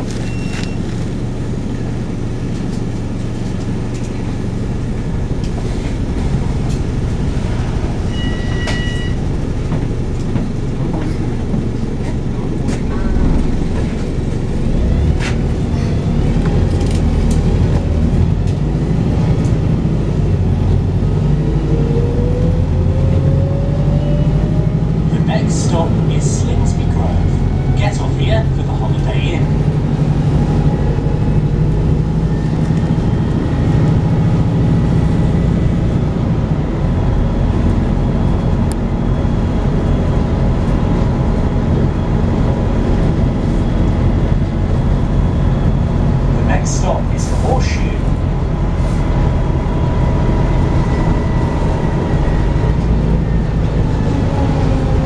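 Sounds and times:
bus diesel engine pulling: 0.0 - 55.0
bus interior rattles: 0.0 - 55.0
road rumble: 0.0 - 55.0.

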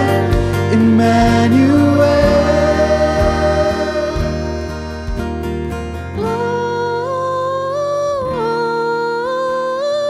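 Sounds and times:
church choir singing: 0.0 - 6.0
low accompaniment: 0.0 - 7.8.

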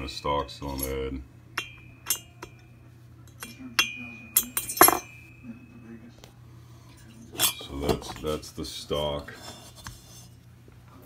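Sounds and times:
metallic clinks of valves dropping: 3.3 - 5.2.

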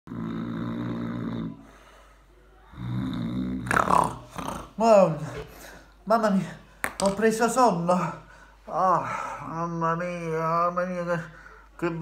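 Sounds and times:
man snoring: 0.1 - 1.6, 2.7 - 4.8.

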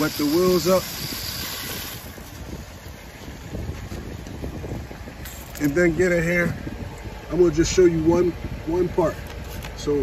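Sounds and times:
hose spraying water: 0.0 - 2.6
wind rumble on microphone: 0.0 - 10.0.

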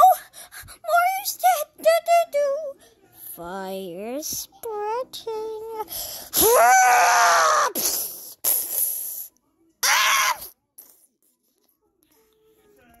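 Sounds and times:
person screaming: 6.4 - 7.8, 9.8 - 10.5.

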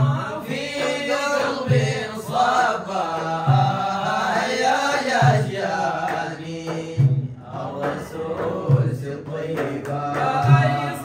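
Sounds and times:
men chanting devotional song: 0.0 - 11.0.

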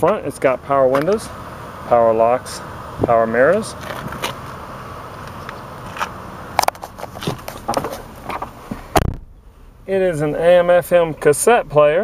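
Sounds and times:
outdoor background hum: 0.0 - 12.0
handling clicks and scrapes: 3.7 - 4.6, 5.2 - 8.9
low thump: 7.2 - 9.4.

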